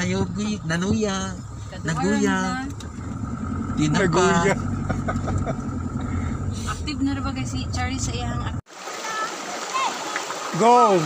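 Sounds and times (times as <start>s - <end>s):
people's voices: 0.0s - 2.8s, 3.7s - 11.0s
engine and road drone: 0.0s - 8.7s.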